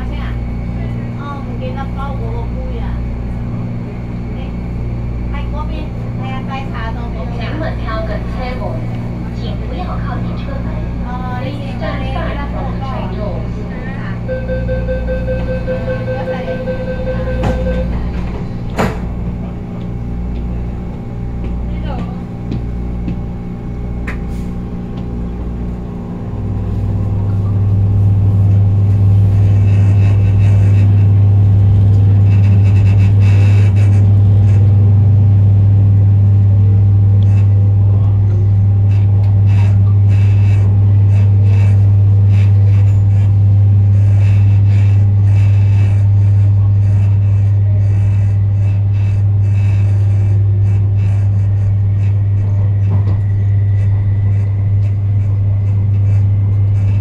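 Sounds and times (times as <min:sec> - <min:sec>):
train motors humming: 0:00.0 - 0:57.0.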